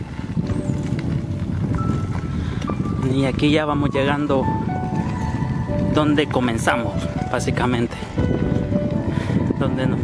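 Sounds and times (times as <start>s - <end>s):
bicycle rattling on dirt road: 0.0s - 10.0s
wind buffeting microphone: 0.0s - 10.0s.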